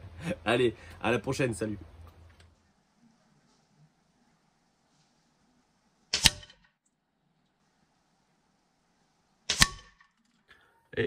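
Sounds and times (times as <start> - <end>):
air rifle pellet striking paper target: 6.1 - 6.7, 9.5 - 10.2.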